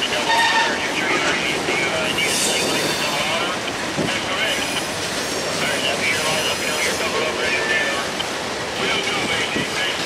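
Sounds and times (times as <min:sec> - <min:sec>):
freight cars rumbling on rails: 0:00.0 - 0:10.0.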